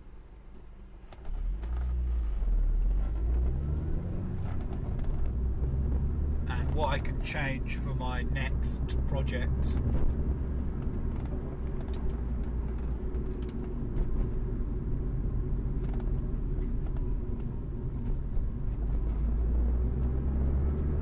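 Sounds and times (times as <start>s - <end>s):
car engine rumble: 0.0s - 21.0s
road noise inside car: 0.0s - 21.0s.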